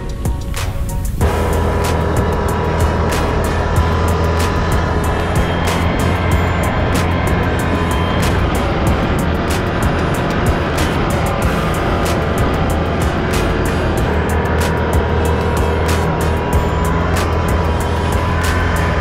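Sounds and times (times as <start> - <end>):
music with steady beat: 0.0 - 19.0
atv engine running: 1.1 - 19.0.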